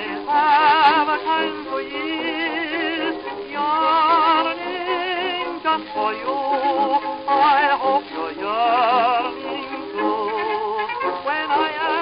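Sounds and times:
old dance orchestra record: 0.0s - 12.0s.

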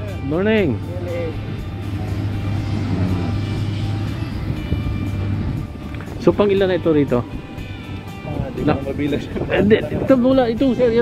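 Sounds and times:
background music: 0.0s - 11.0s
heavy machinery engine hum: 0.8s - 8.0s.

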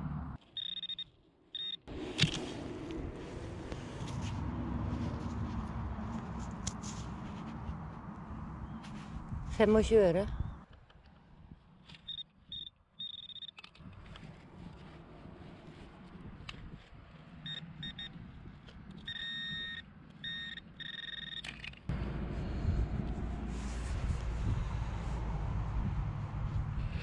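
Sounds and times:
high-pitched detector beeps: 0.6s - 1.9s, 12.1s - 13.6s, 17.5s - 18.2s, 19.0s - 21.5s.

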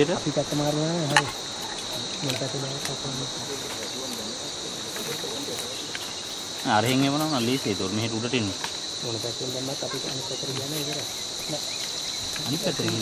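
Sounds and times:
crickets chirping: 0.0s - 13.0s
faint voices: 0.0s - 13.0s.

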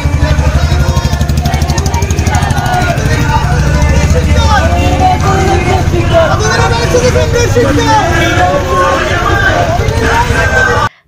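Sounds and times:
marchers shouting slogans: 0.0s - 11.0s
vehicle engine humming: 0.0s - 11.0s.

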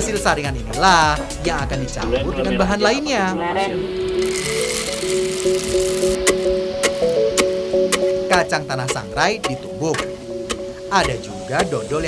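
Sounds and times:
background music of held notes: 0.0s - 12.0s
peanuts poured into wooden mortar: 4.2s - 6.2s.

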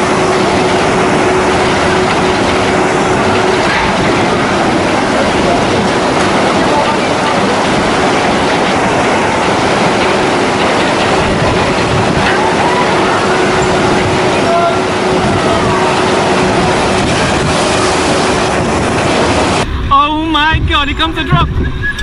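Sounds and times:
conveyor lift rattling and humming: 0.0s - 22.0s
water rushing down a chute: 0.0s - 22.0s.

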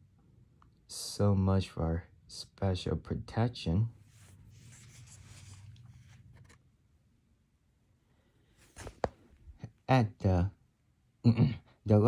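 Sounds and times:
low steady hum: 0.0s - 12.0s
paper page turning: 4.1s - 6.6s, 8.6s - 9.4s.

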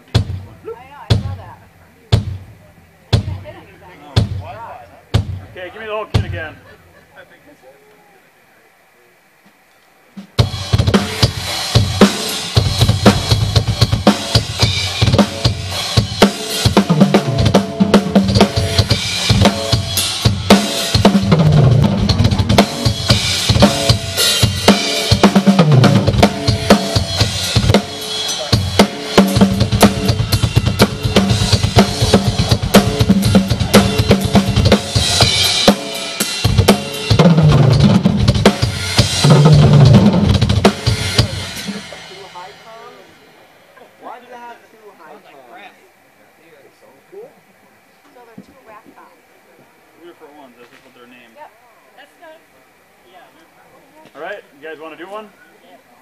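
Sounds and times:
drum kit playing loud: 0.0s - 6.7s, 10.1s - 44.4s.

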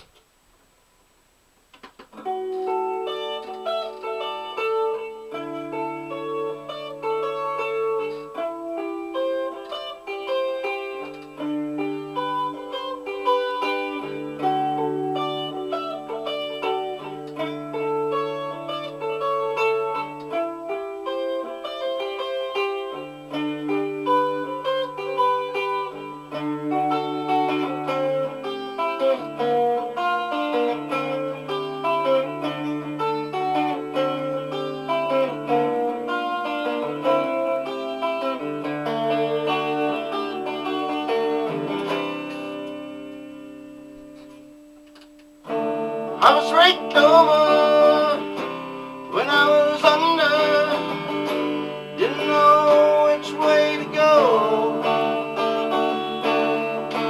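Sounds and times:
electric guitar played solo: 1.8s - 57.0s.

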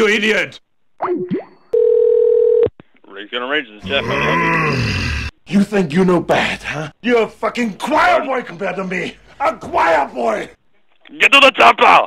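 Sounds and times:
telephone line tone: 1.7s - 2.7s.

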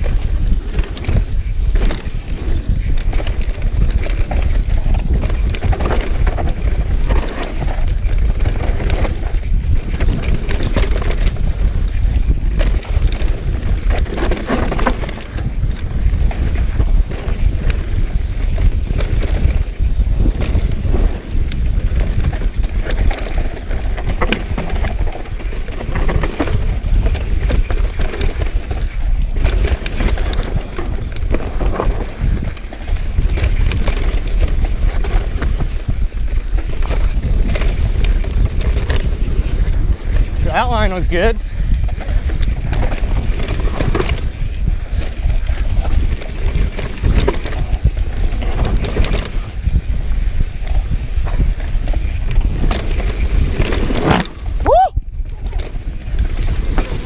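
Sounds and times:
bike clacking and rattling: 0.0s - 57.0s
tyres running over dirt: 0.0s - 57.0s
wind rumble on microphone: 0.0s - 57.0s.

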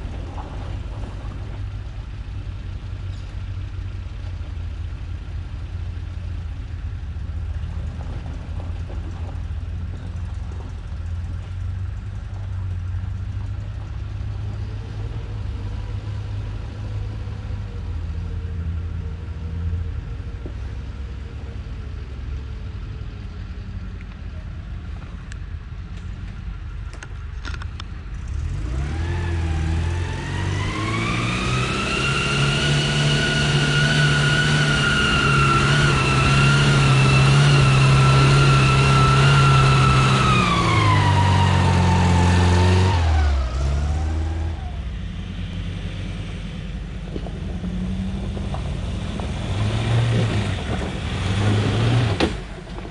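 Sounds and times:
off-road vehicle engine revving: 0.0s - 24.1s, 28.1s - 52.9s.

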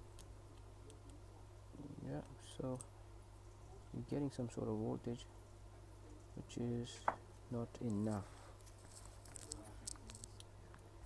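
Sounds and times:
low steady hum: 0.0s - 11.0s
gloved hand handling noises: 7.0s - 10.9s.

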